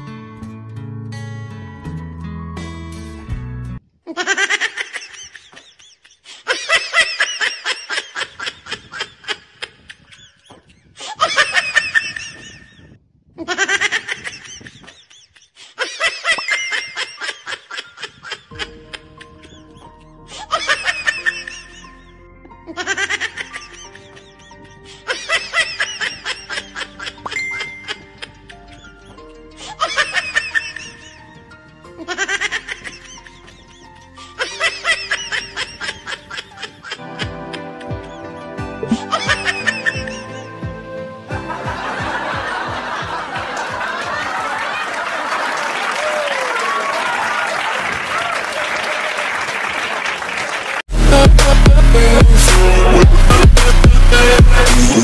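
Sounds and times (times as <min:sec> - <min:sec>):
background music: 0:00.0 - 0:03.8, 0:17.7 - 0:44.8, 0:50.9 - 0:55.0
high-pitched giggling: 0:04.1 - 0:31.4, 0:32.0 - 0:40.7
high-pitched laughing: 0:04.1 - 0:31.4, 0:32.0 - 0:40.7.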